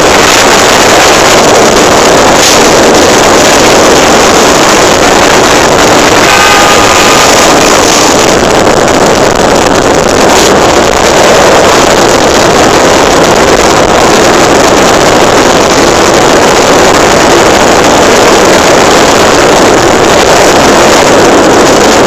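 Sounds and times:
motorcycle engine drone: 0:00.0 - 0:22.0
wind rush on microphone: 0:00.0 - 0:22.0.

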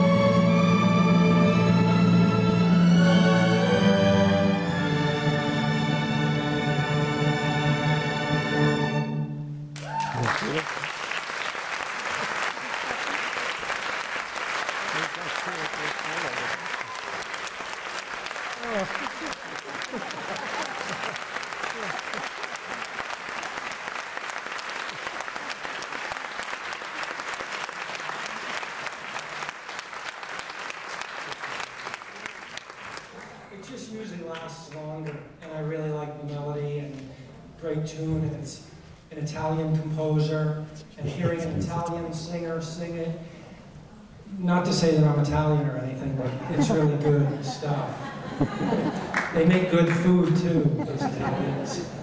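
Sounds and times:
audience applauding: 0:09.8 - 0:33.7, 0:48.1 - 0:52.0
person laughing: 0:14.9 - 0:16.6, 0:18.6 - 0:22.3, 0:41.0 - 0:41.9, 0:46.3 - 0:47.6, 0:48.3 - 0:49.2, 0:50.6 - 0:51.9.

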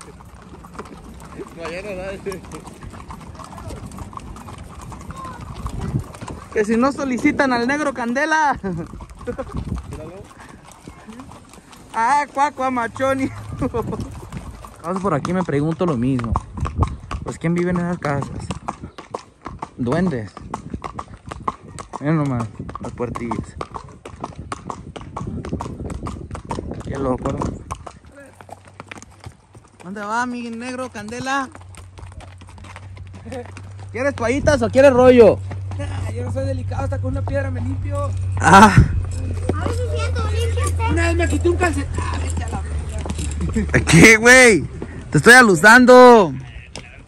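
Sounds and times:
horse hooves clip-clopping: 0:00.0 - 0:47.0.

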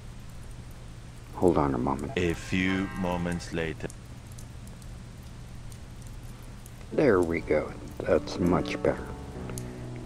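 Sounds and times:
faint crackles: 0:00.0 - 0:10.0
low hum: 0:00.0 - 0:10.0.

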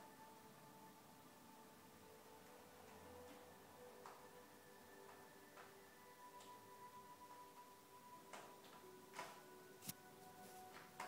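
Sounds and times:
quiet meditation music: 0:00.0 - 0:11.0.

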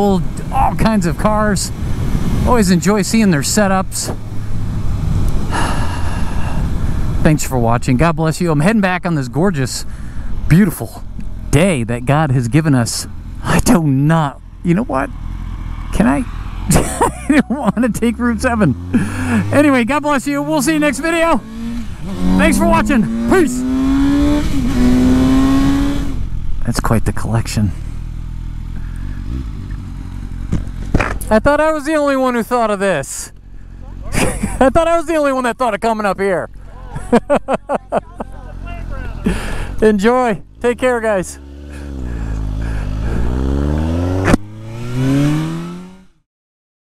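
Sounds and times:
road and wind noise: 0:00.0 - 0:46.2
motorcycle engine droning: 0:09.5 - 0:32.8, 0:33.4 - 0:46.2
motorcycle engine idling: 0:27.7 - 0:31.3, 0:36.5 - 0:43.7.

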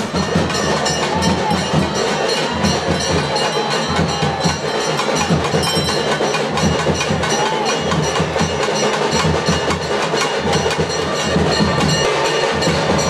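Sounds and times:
dense drumming: 0:00.0 - 0:13.0
metal bells ringing: 0:00.0 - 0:13.0.

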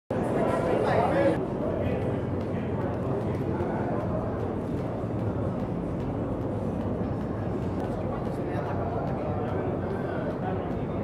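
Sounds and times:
low room hum: 0:00.1 - 0:11.0
skipping rope ticking on rubber floor: 0:01.8 - 0:11.0.

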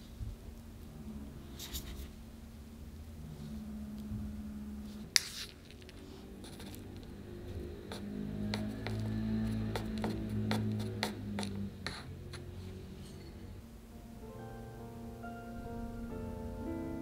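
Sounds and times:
soft background music: 0:06.0 - 0:17.0.

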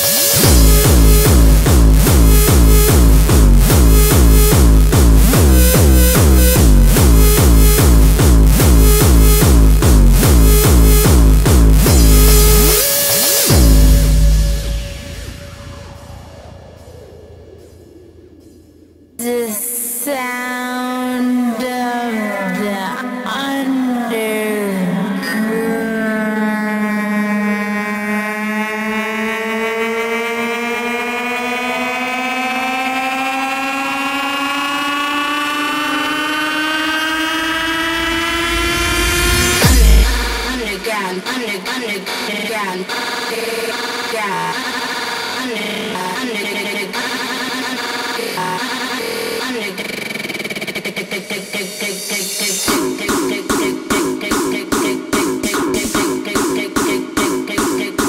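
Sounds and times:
choppy synth pattern: 0:00.0 - 0:17.2, 0:19.2 - 0:58.0
rising synth chord: 0:00.2 - 0:17.7, 0:27.2 - 0:40.8
heavy bass hit: 0:00.4 - 0:12.9, 0:13.5 - 0:18.4, 0:37.8 - 0:40.9
kick-drum beat: 0:00.4 - 0:16.5, 0:38.9 - 0:41.4, 0:52.7 - 0:58.0.

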